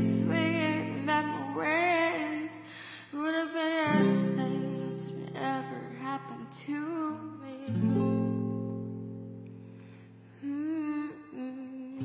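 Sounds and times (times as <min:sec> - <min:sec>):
woman humming: 0:10.4 - 0:12.0.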